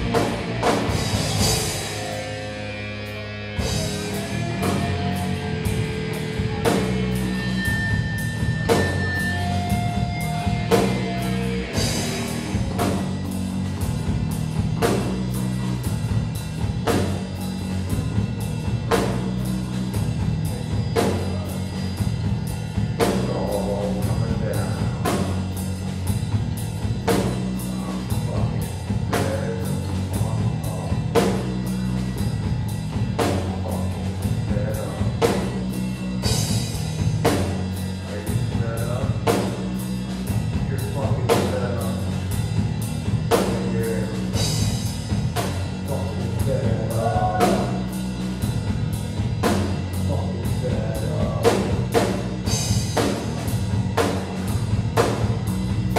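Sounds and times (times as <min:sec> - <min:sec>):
bass guitar: 0:00.0 - 0:55.9
distorted electric guitar: 0:00.0 - 0:55.9
drum kit: 0:00.0 - 0:55.9.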